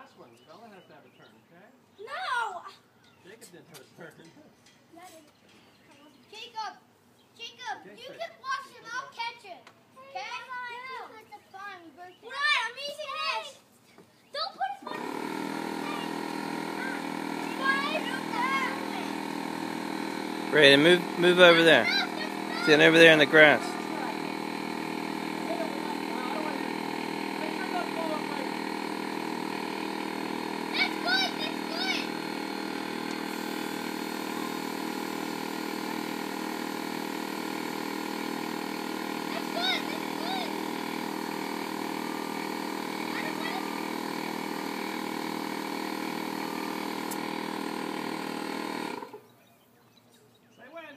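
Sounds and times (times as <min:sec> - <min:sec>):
air compressor running: 0:14.8 - 0:49.3
motor humming: 0:14.8 - 0:49.3
children's voices: 0:30.8 - 0:32.1.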